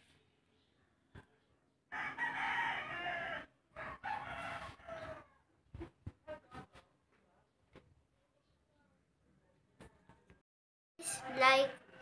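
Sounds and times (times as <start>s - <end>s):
rooster crowing: 1.9s - 5.4s.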